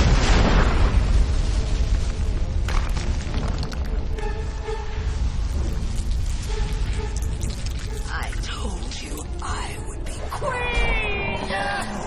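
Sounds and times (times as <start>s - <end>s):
rock blasting explosive crash: 0.0s - 3.9s
crumbling debris: 0.0s - 8.4s
deep rumble: 0.0s - 12.0s.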